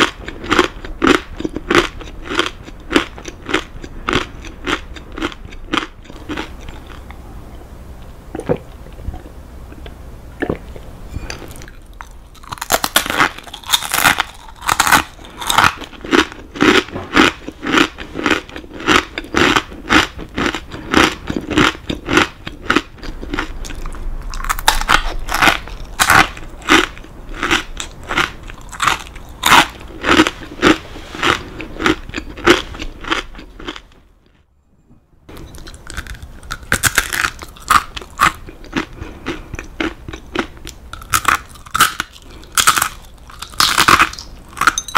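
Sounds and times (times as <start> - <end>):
crunchy chewing of crackers: 0.0 - 7.2, 8.4 - 34.4, 35.3 - 44.9.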